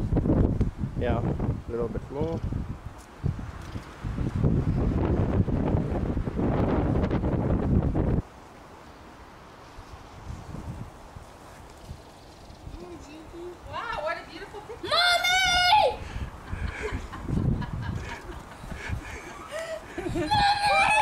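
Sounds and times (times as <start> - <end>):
wind buffeting microphone: 0.0 - 8.4, 9.8 - 21.0
faint outdoor background: 0.0 - 21.0.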